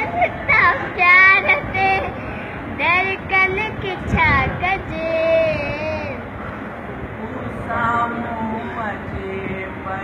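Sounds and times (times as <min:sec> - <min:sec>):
girl singing: 0:00.0 - 0:06.2.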